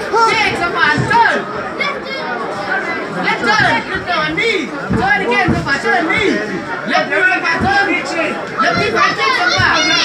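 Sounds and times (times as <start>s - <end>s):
voices talking and calling out: 0.0s - 10.0s.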